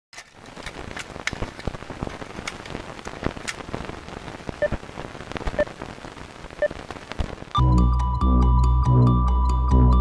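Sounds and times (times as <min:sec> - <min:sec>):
rain pattering: 0:00.2 - 0:07.6.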